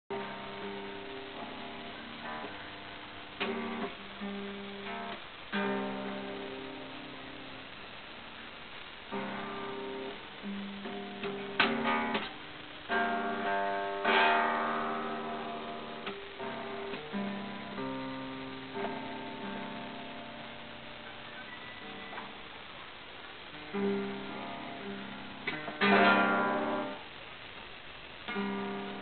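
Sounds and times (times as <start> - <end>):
acoustic guitar strings strummed: 0.1 - 7.8, 9.0 - 22.7, 23.3 - 27.1, 28.3 - 29.0.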